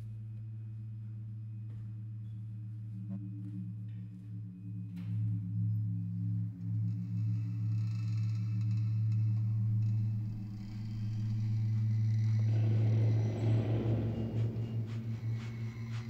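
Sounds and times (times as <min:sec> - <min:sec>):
low droning hum: 0:00.0 - 0:16.0
rough rumbling noise: 0:10.6 - 0:16.0.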